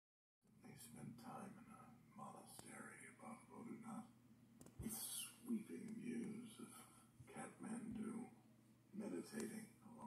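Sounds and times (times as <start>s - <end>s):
man whispering: 0.5s - 4.2s, 4.8s - 10.0s.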